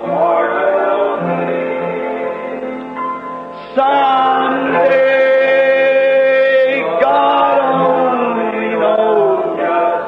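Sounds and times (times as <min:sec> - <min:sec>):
slow hymn singing: 0:00.0 - 0:10.0.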